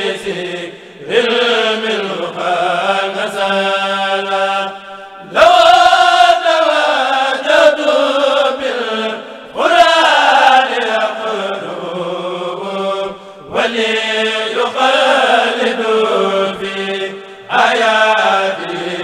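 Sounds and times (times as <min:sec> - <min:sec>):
men chanting a cappella: 0:00.0 - 0:19.0.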